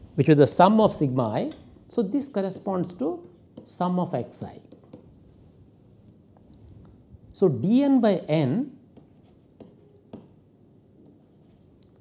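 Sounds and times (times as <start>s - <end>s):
pen writing on tablet: 8.9s - 10.4s.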